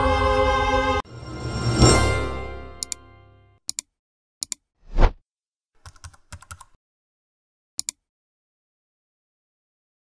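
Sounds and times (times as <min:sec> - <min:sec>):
short whoosh: 0:04.9 - 0:05.2
computer keyboard key clicks: 0:05.8 - 0:06.8, 0:07.8 - 0:08.0.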